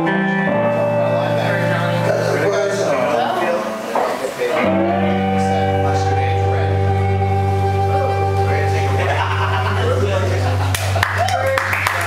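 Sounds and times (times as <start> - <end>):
amplified blues harmonica: 4.6 - 9.0.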